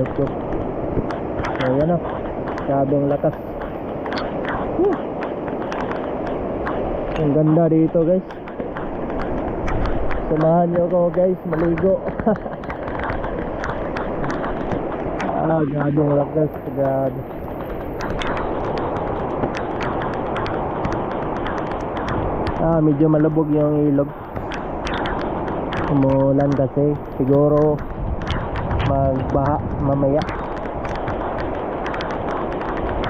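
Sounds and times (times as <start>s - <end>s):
raindrops ticking on camera: 0.0s - 33.0s.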